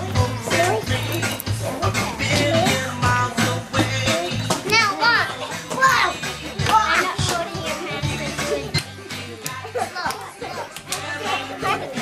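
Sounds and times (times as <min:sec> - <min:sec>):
music playing: 0:00.0 - 0:12.0
children calling out: 0:04.6 - 0:12.0.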